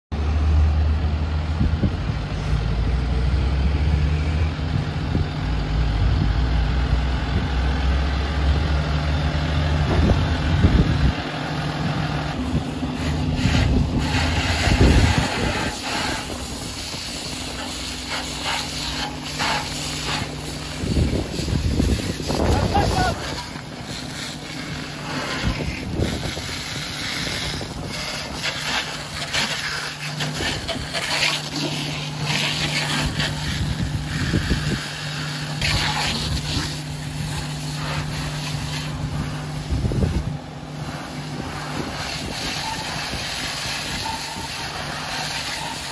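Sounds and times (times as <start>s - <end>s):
large vehicle engine humming: 0.1s - 45.9s
bursts of hissing: 12.4s - 45.9s.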